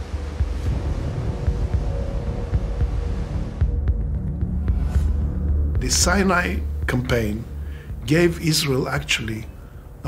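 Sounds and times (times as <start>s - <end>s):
faint steady hum: 0.0s - 10.0s
low throbbing music drone: 0.0s - 10.0s.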